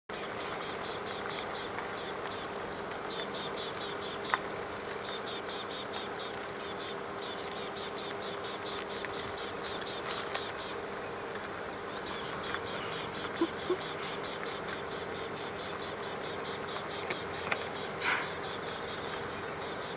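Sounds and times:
faint steady low hum: 0:00.1 - 0:19.9
insects chirping: 0:00.1 - 0:19.9.

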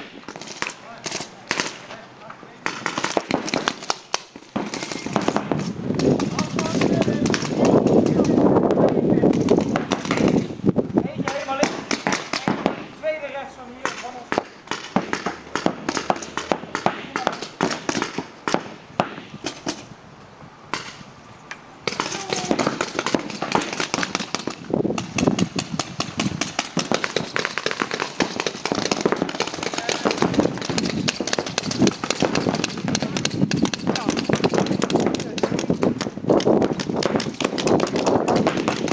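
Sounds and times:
paintball markers firing: 0:00.0 - 0:02.0, 0:02.6 - 0:10.5, 0:11.2 - 0:13.0, 0:13.8 - 0:19.9, 0:21.9 - 0:38.9
voices: 0:00.6 - 0:03.8, 0:04.7 - 0:18.4, 0:21.5 - 0:24.1, 0:26.9 - 0:36.0.

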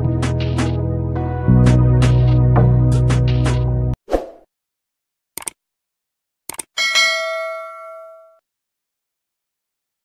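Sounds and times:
notification bell ding: 0:06.8 - 0:08.4.

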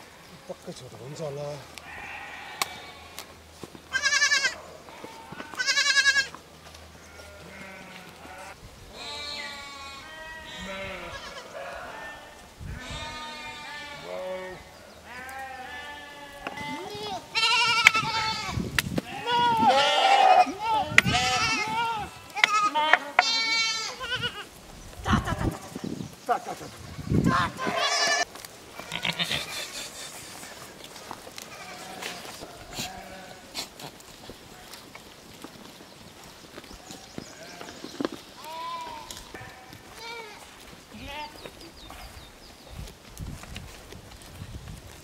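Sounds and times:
sheep bleating: 0:01.8 - 0:03.2, 0:03.9 - 0:06.4, 0:07.0 - 0:25.8, 0:26.8 - 0:29.8, 0:31.5 - 0:33.7, 0:36.8 - 0:37.8, 0:38.4 - 0:41.4.

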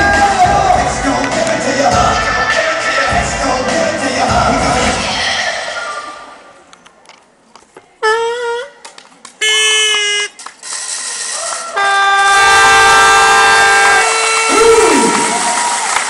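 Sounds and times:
dance music over loudspeakers: 0:00.0 - 0:06.4, 0:13.3 - 0:16.0
long multi-note train horn blast: 0:11.8 - 0:15.1
train horn toots: 0:11.8 - 0:15.2.

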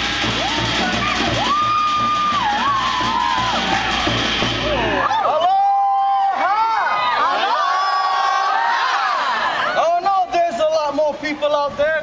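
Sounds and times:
steady drum beat: 0:00.0 - 0:05.1
high shouted call and whoops: 0:00.2 - 0:09.8.

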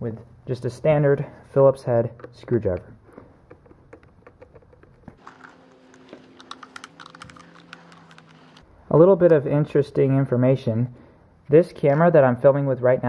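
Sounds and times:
screwdriver clicking on screws: 0:03.5 - 0:08.6.

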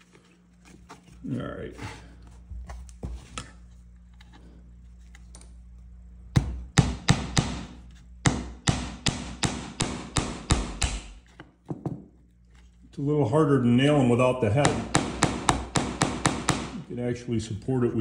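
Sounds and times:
hammer tapping nails into wood: 0:06.8 - 0:11.9, 0:14.6 - 0:16.8.

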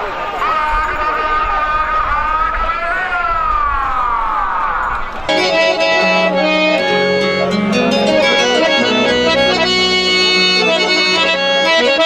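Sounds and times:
high wailing tone sliding down: 0:05.3 - 0:11.5.

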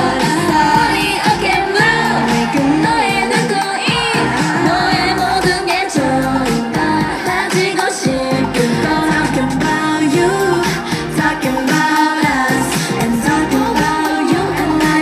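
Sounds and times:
female group singing pop song: 0:00.0 - 0:15.0.

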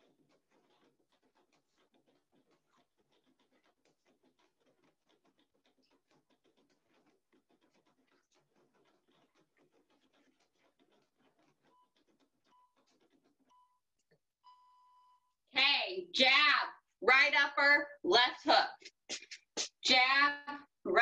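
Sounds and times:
faint rapid patter of small taps: 0:00.0 - 0:13.5.

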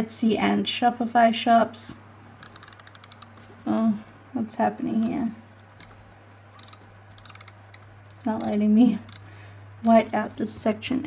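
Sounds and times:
correction tape ratcheting clicks: 0:02.4 - 0:03.5, 0:04.9 - 0:10.6.

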